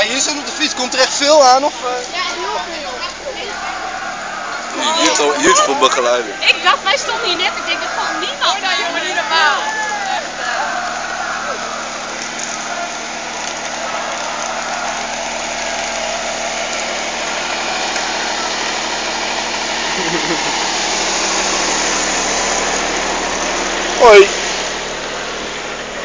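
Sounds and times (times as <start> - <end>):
engine humming: 0.0 - 26.0.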